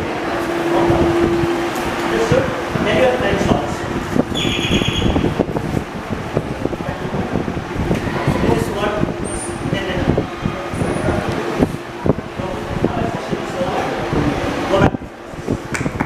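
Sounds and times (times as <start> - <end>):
indistinct voices talking: 0.0 - 15.7
steady hum: 0.0 - 16.0.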